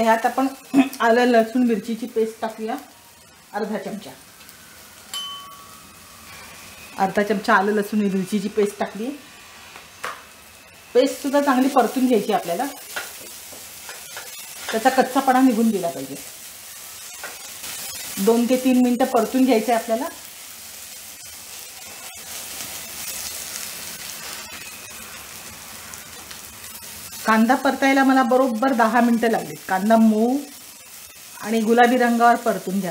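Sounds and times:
onions sizzling in hot oil: 0:00.0 - 0:32.9.

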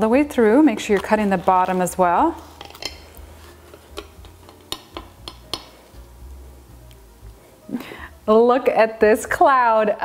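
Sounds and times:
meringue crust crackling: 0:00.0 - 0:07.6.

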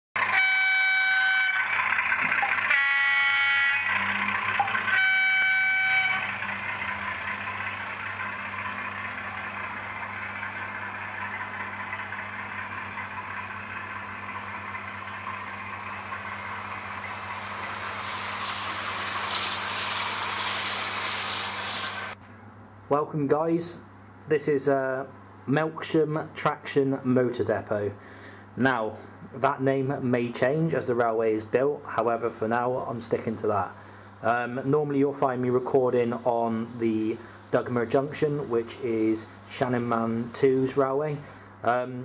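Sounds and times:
model train horn: 0:00.2 - 0:06.9
model train running on track: 0:00.2 - 0:22.2.

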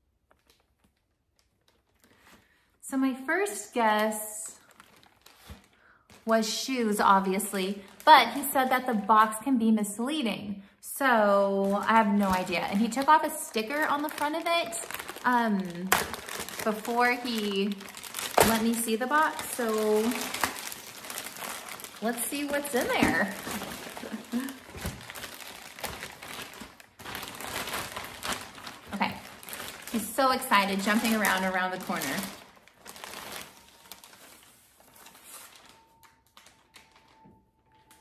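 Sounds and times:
plastic mailer bag crinkling: 0:00.0 - 0:02.7, 0:03.6 - 0:09.4, 0:10.9 - 0:38.0
sharp plastic crackle: 0:00.0 - 0:02.8, 0:03.7 - 0:08.9, 0:11.0 - 0:38.0
faint steady high tone: 0:33.4 - 0:38.0.

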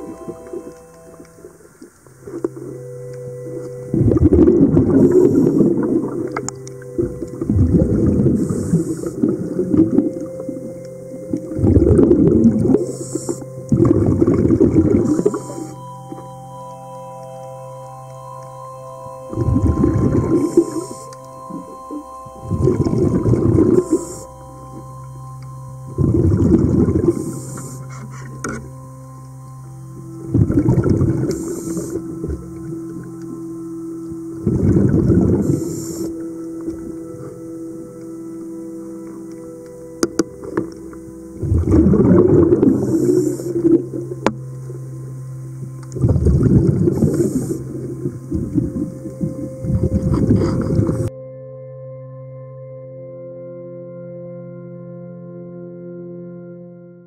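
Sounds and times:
steady low hum: 0:00.0 - 0:51.5
bubbly exhaled air underwater: 0:03.5 - 0:15.8, 0:19.3 - 0:24.4, 0:25.9 - 0:28.7, 0:30.2 - 0:33.4, 0:34.3 - 0:37.4, 0:40.1 - 0:44.8, 0:45.9 - 0:51.1.

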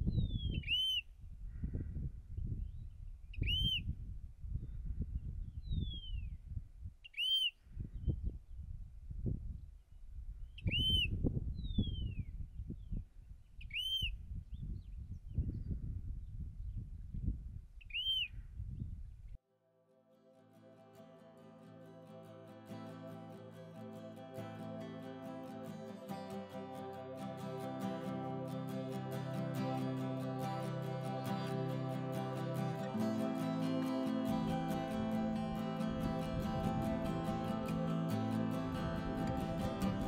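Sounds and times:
lark whistling calls: 0:00.4 - 0:01.0, 0:03.4 - 0:03.8, 0:10.7 - 0:11.1, 0:17.9 - 0:18.3.

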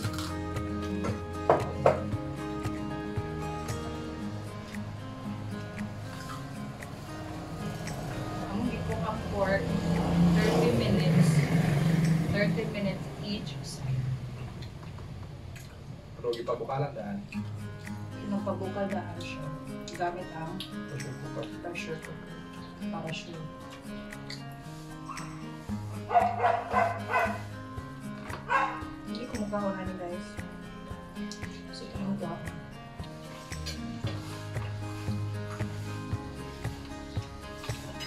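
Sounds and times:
background music: 0:00.0 - 0:14.2, 0:17.2 - 0:38.0
passing vehicle engine: 0:03.8 - 0:16.0, 0:25.6 - 0:27.5
voices: 0:08.4 - 0:14.0
dog barking: 0:26.1 - 0:27.4, 0:28.4 - 0:28.9.

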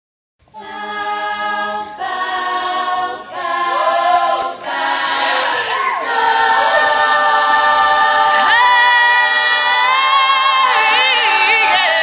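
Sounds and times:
women singing in close harmony: 0:00.5 - 0:12.0.

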